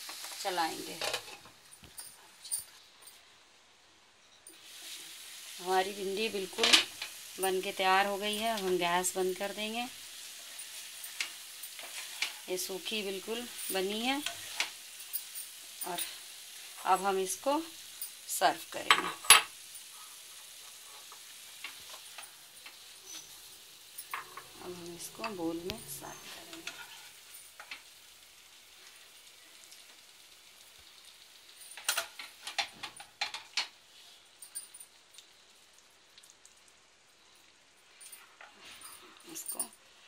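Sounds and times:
covered pan hissing: 0.0 - 1.5, 4.5 - 34.3
food sizzling in a wok: 0.0 - 40.0.

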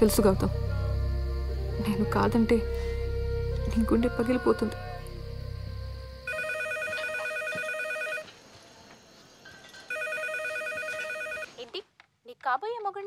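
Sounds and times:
telephone ringing with electronic trill: 6.3 - 8.3, 9.9 - 11.5.

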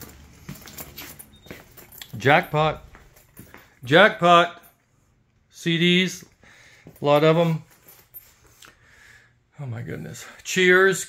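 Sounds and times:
footsteps on tile floor: 0.0 - 4.0, 6.1 - 8.6.

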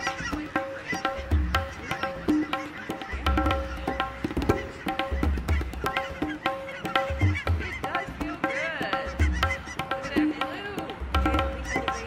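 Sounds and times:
geese honking: 0.0 - 3.3
background music with drum beat: 0.0 - 12.0.

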